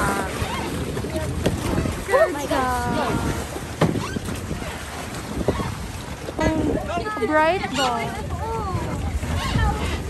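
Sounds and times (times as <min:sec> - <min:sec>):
sea around boat: 0:00.0 - 0:10.0
wind over microphone: 0:00.0 - 0:10.0.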